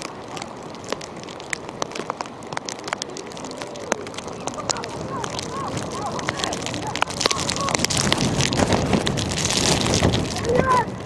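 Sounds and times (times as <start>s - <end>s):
rain hiss: 0.0s - 11.0s
raindrops ticking: 0.0s - 11.0s.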